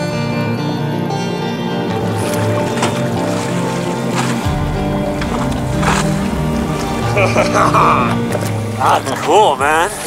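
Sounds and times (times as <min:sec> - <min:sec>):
held tone background music: 0:00.0 - 0:10.0
deep bass layer: 0:04.4 - 0:10.0.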